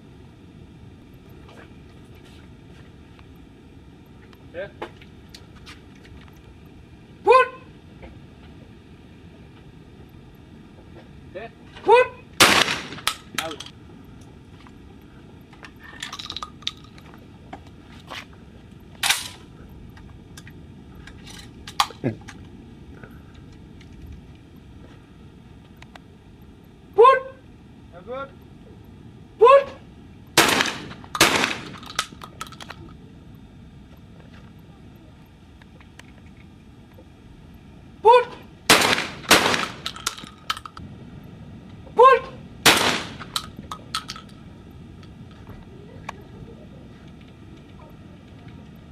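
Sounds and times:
person shouting pull: 0:07.3 - 0:07.7, 0:29.4 - 0:29.8, 0:38.0 - 0:38.4, 0:42.0 - 0:42.4
shotgun shots: 0:12.4 - 0:13.6, 0:30.4 - 0:32.1, 0:38.7 - 0:40.2, 0:42.6 - 0:43.5.

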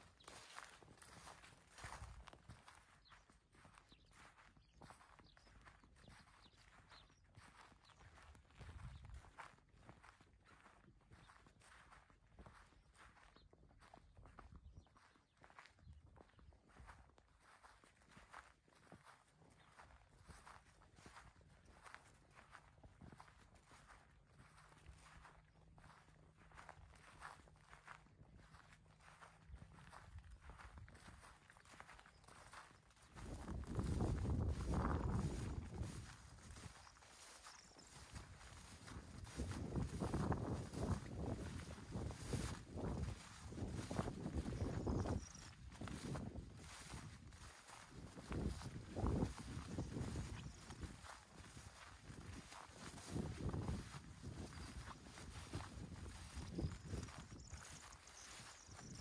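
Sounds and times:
footsteps through grass: 0:00.0 - 0:59.0.

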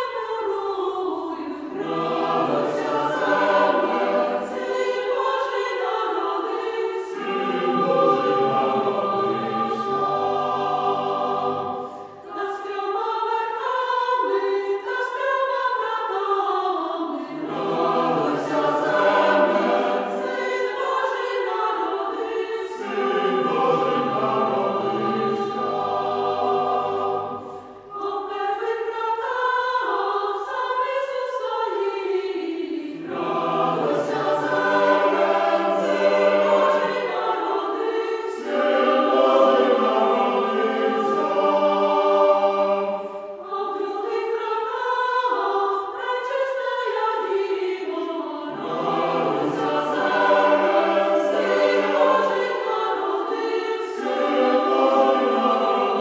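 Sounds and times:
church choir singing a carol: 0:00.0 - 0:56.0.

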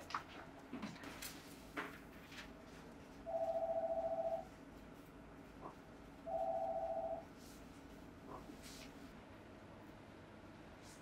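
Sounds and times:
telephone ringing: 0:03.3 - 0:04.5, 0:06.3 - 0:07.2.

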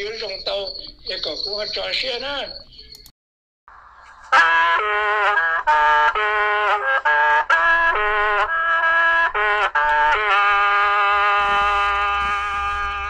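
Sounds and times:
free-reed mouth organ playing: 0:00.0 - 0:03.1.

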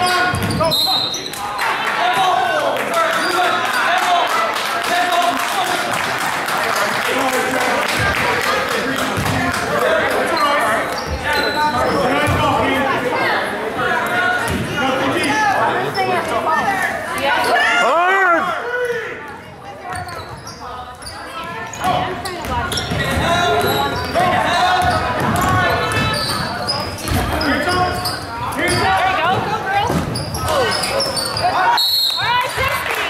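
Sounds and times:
people shouting and talking: 0:00.0 - 0:33.0.

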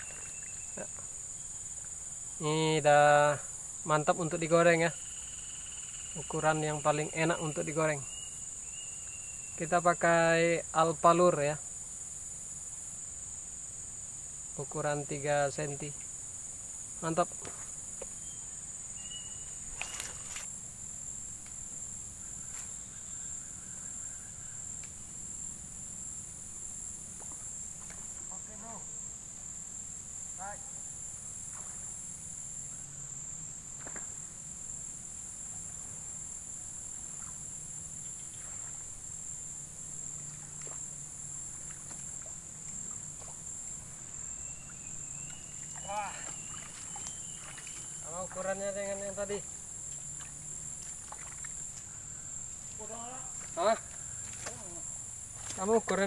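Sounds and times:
high-pitched insect chorus: 0:00.0 - 0:56.0.

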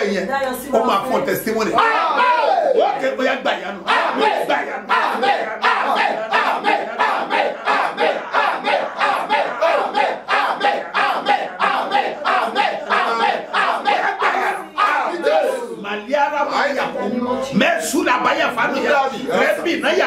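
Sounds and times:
crowd praying aloud: 0:01.6 - 0:20.0
man shouting prayer: 0:01.7 - 0:17.0.

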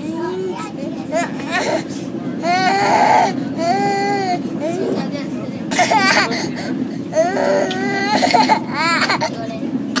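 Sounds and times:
toddler crying: 0:00.0 - 0:05.0, 0:07.1 - 0:09.3.

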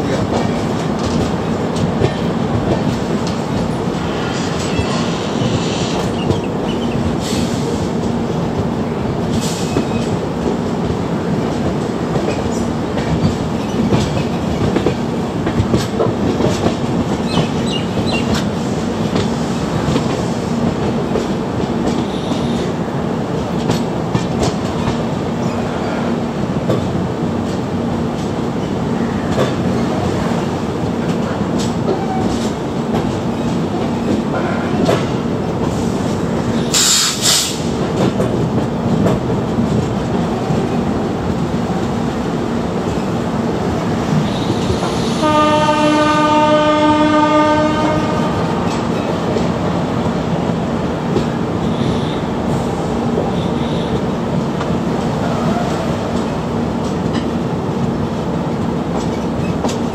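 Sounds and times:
train rumble: 0:00.0 - 0:59.9.

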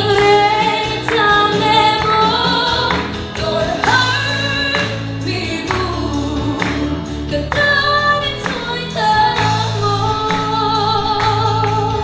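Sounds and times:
woman singing into a microphone: 0:00.0 - 0:12.0.

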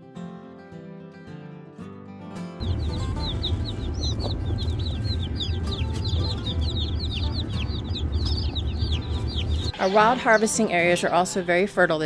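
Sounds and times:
steady low rumble: 0:02.6 - 0:09.7
chicks peeping: 0:02.6 - 0:11.8.

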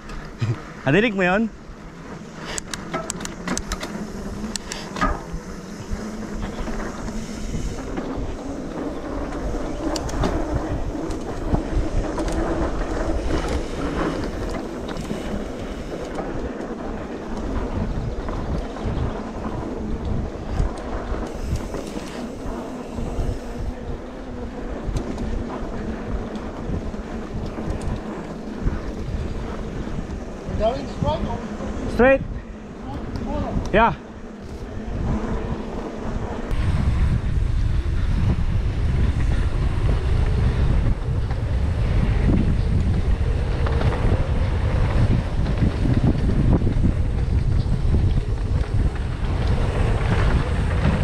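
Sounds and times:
bike tyres rumbling over dirt: 0:00.0 - 0:51.0
wind buffeting microphone: 0:00.0 - 0:51.0.

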